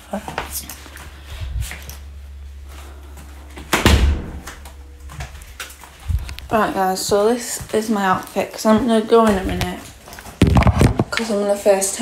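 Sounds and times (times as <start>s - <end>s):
low steady hum: 0.0s - 12.0s
loud thump: 3.5s - 6.3s.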